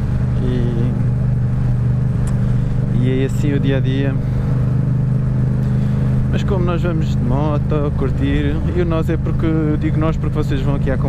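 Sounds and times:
motorcycle engine droning: 0.0s - 11.0s.

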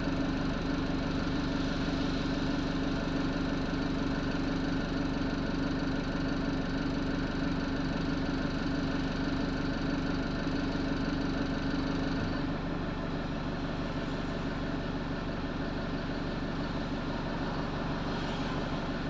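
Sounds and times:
bus engine humming: 11.6s - 19.0s.

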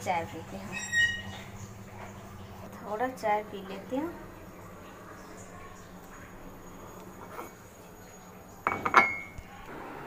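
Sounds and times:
ceramic cup clinking on counter: 8.6s - 9.4s.

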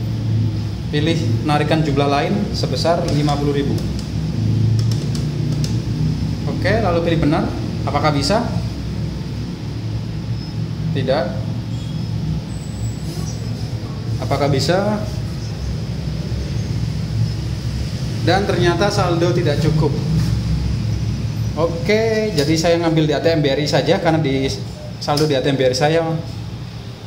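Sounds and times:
steady low hum: 0.0s - 27.0s
keypad keys pressed: 3.0s - 5.8s.

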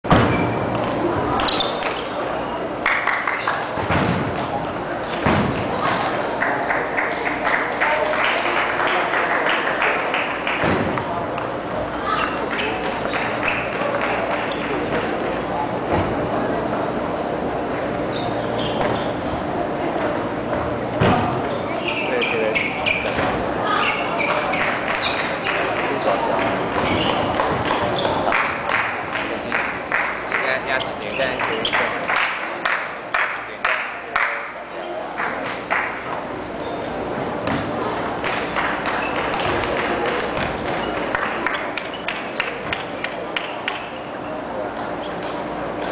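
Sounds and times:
voices in a large hall: 0.0s - 45.9s.

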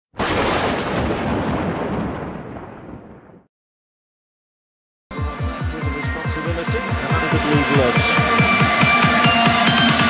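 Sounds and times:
explosion-like boom with deep rumble: 0.2s - 3.5s.

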